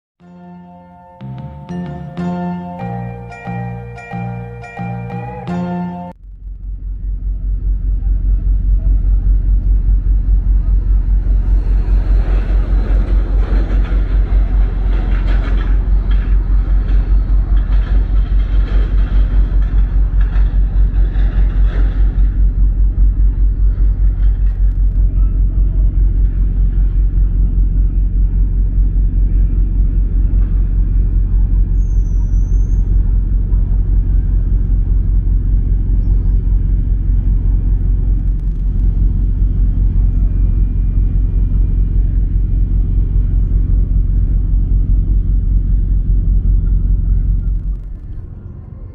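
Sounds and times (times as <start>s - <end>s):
ship diesel engines throbbing: 0.3s - 48.9s.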